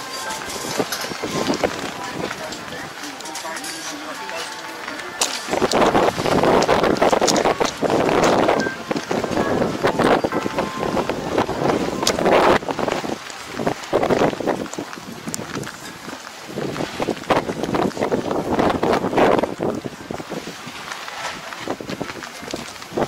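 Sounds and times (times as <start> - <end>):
wind gusting over microphone: 0.0 - 3.7, 5.1 - 23.0.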